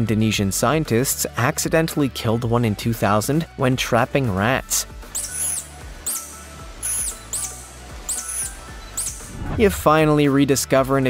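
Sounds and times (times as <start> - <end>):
background music: 0.0 - 11.0
high-pitched animal squeaks: 5.1 - 9.3.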